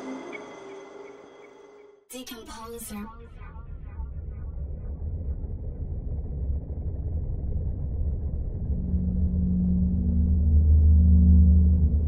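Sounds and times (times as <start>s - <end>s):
deep rumbling drone: 3.1s - 12.0s
steady low note: 3.1s - 12.0s.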